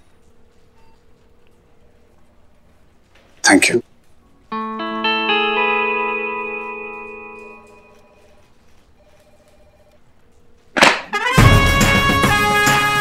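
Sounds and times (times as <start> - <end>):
music chord ringing out: 4.5 - 8.5.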